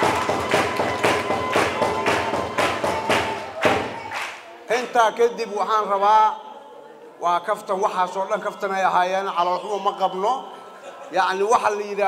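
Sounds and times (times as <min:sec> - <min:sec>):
sharp percussive beat: 0:00.0 - 0:04.5.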